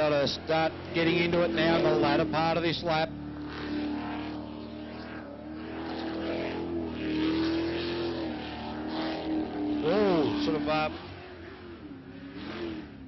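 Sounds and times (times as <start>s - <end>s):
boat engine running hard: 0.0s - 13.0s.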